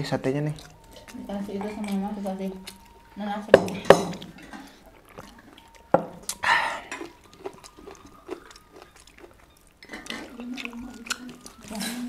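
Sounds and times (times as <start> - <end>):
cutlery clinking on a plate: 3.5 - 4.7.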